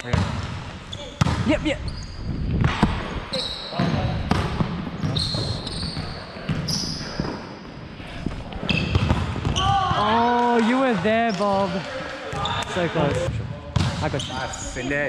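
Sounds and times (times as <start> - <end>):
sneakers squeaking: 0.0 - 7.8, 8.6 - 10.3, 12.3 - 14.9
footfalls on hardwood court: 8.7 - 10.0.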